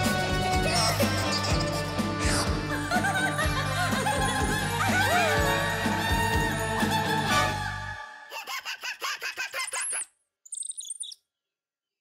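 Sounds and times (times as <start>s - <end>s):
cartoon bird chirping: 8.4s - 11.3s
high whistling tweets: 10.4s - 11.2s.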